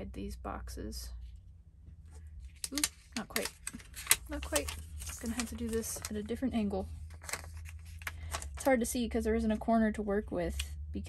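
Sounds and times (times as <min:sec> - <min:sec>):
woman's voice: 0:00.0 - 0:01.2, 0:02.7 - 0:03.6, 0:04.3 - 0:06.9, 0:08.5 - 0:11.0
low room hum: 0:00.0 - 0:11.0.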